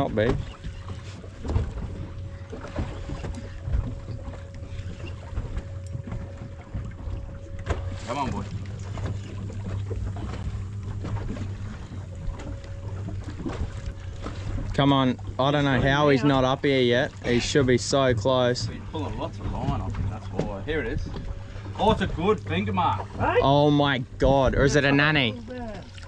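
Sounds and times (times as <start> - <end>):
boat engine idling: 0.0 - 26.0.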